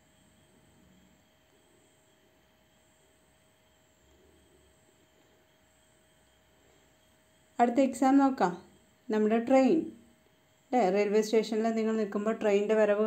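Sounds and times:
thin steady hum: 0.0 - 13.0.

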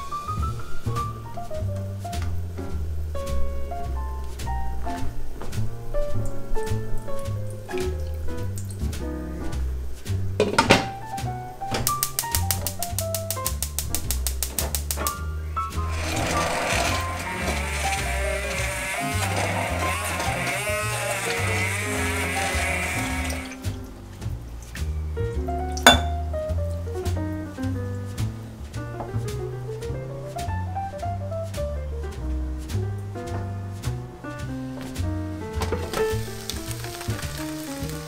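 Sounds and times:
background music with bass: 0.0 - 38.0
stick blender whirring: 15.8 - 23.6.

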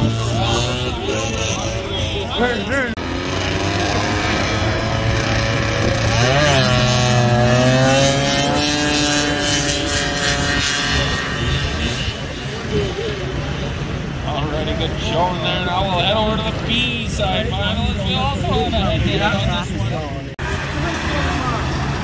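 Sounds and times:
snowmobile engines accelerating: 0.0 - 22.0.

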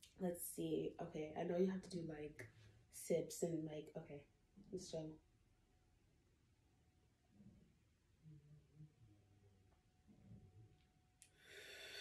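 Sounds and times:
breath through pursed lips: 11.3 - 12.0.

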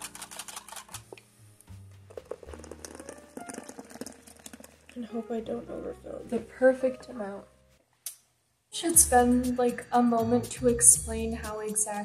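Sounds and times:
whisk clicking against cup: 2.2 - 4.8.

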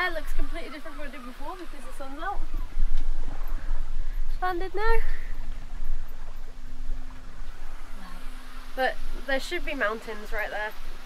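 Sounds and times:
faint steady hum: 0.0 - 11.0
water rushing along hull: 0.0 - 11.0
wind rumbling on microphone: 0.0 - 11.0.

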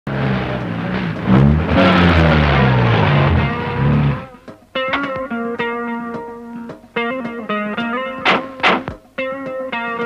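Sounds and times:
loud vehicle engine: 0.1 - 4.4.

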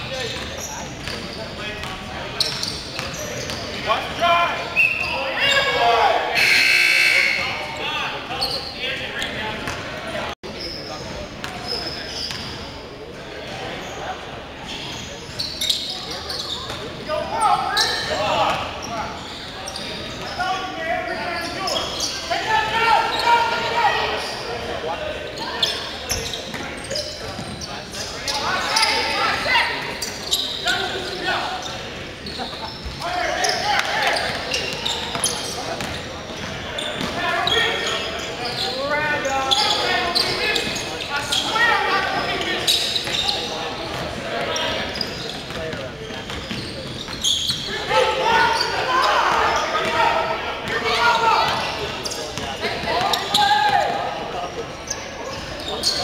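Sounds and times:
players calling out: 0.1 - 10.8, 14.8 - 56.0.

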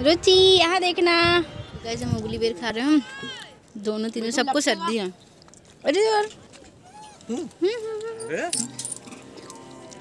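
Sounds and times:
metallic jingling: 8.2 - 9.2.

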